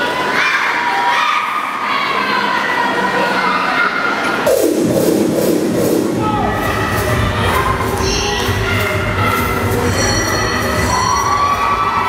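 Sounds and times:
children shouting and cheering: 0:00.0 - 0:04.4, 0:10.8 - 0:12.0
crowd noise: 0:00.0 - 0:12.0.

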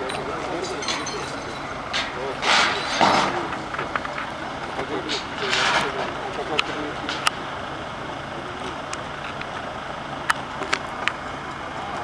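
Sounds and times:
faint voices: 0:00.0 - 0:09.6
idling vehicle engines hum: 0:00.0 - 0:12.0.

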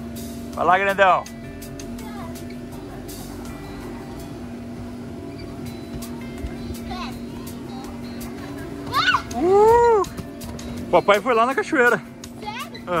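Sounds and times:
air blower humming: 0:00.0 - 0:13.0.

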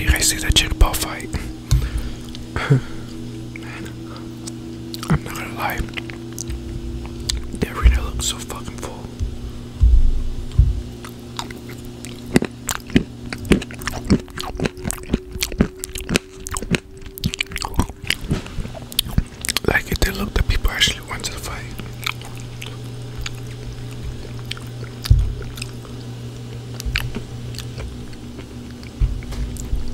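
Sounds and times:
chewing crunchy nuts: 0:00.0 - 0:09.3, 0:10.6 - 0:29.9.

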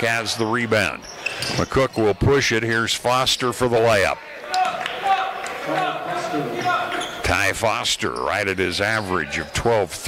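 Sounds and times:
indistinct echoing voices: 0:03.7 - 0:09.8.

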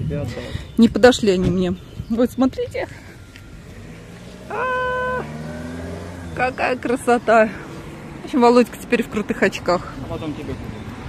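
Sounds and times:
low engine hum: 0:03.2 - 0:11.0.

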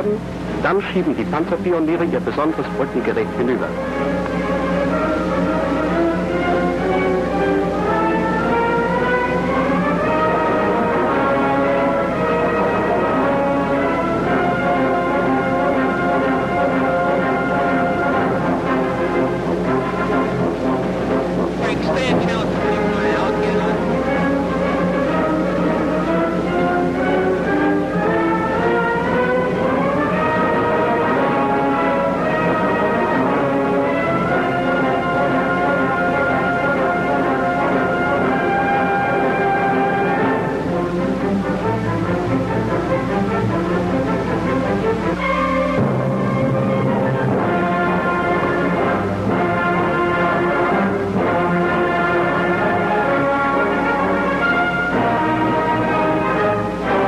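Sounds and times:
orchestral music led by brass: 0:00.0 - 0:57.0.

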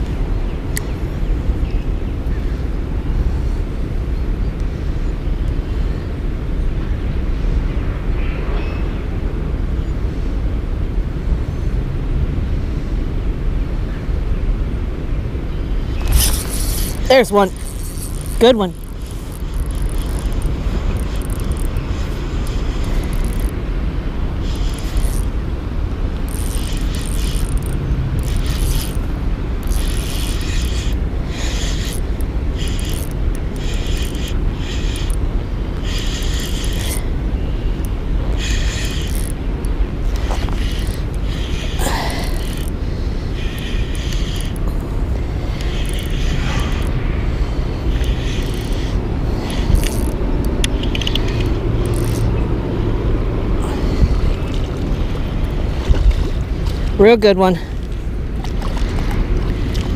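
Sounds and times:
fishing reel whirring and clicking: 0:15.8 - 0:23.6, 0:24.2 - 0:25.4, 0:26.1 - 0:52.6, 0:58.5 - 0:59.9.

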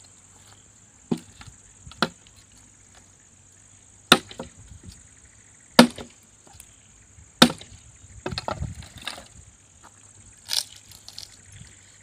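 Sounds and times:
axe chopping wooden log: 0:01.1 - 0:02.2, 0:04.1 - 0:04.5, 0:05.8 - 0:06.1, 0:07.4 - 0:09.2.

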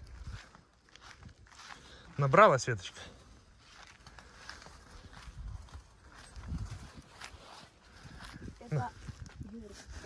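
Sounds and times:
footsteps rustling through plants: 0:00.0 - 0:10.0.

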